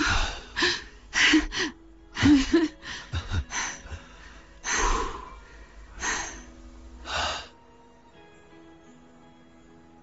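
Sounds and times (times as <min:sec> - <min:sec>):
person breathing out heavily: 0:00.0 - 0:07.6
soft sustained music notes: 0:00.0 - 0:10.0.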